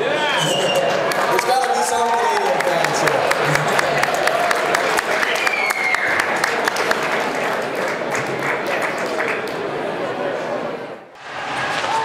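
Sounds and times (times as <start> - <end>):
high falling cheer: 0.1 - 6.9, 11.2 - 12.0
crowd applauding: 0.4 - 10.0.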